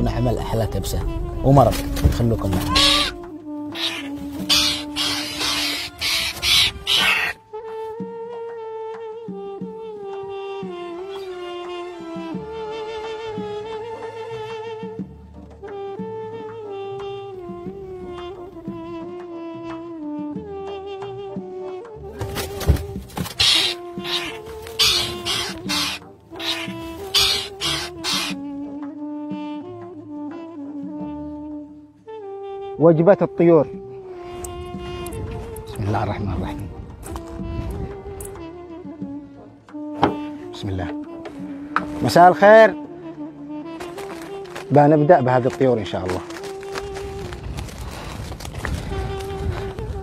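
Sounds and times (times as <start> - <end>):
background music with drone: 0.0 - 50.0
birds squawking: 2.3 - 7.4, 22.2 - 28.5
raptor screeching: 2.4 - 7.4, 23.2 - 28.4.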